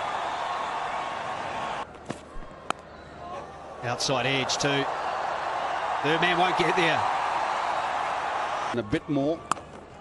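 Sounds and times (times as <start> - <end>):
stadium crowd cheering: 0.0 - 10.0.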